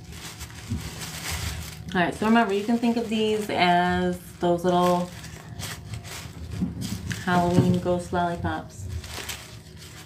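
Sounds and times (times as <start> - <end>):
tissue paper rustling and crinkling: 0.0 - 10.0.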